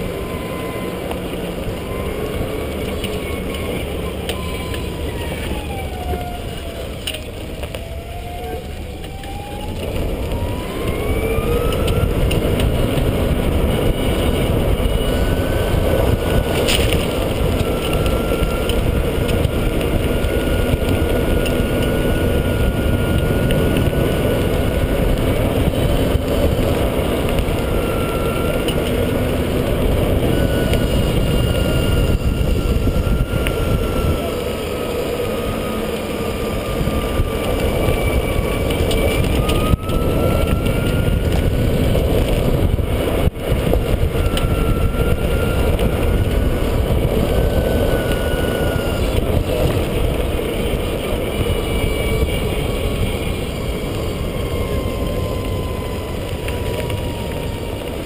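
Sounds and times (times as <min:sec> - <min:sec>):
golf cart drive whine: 0:00.0 - 0:58.0
wind rumble on microphone: 0:00.0 - 0:58.0.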